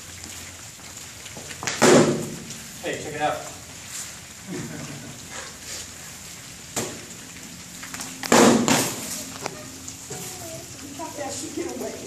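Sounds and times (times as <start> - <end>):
foam swords thudding: 8.3 - 9.0.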